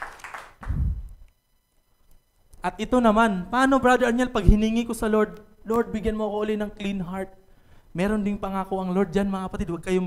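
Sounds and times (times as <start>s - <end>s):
hand claps: 0.0s - 0.8s.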